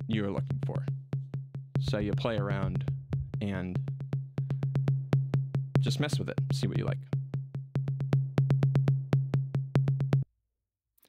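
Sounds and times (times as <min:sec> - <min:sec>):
steady low tone: 0:00.0 - 0:10.2.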